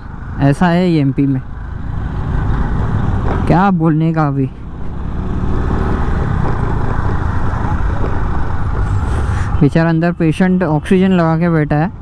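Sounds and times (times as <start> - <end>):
wind and road noise: 0.0 - 12.0
scooter engine running: 4.5 - 9.0.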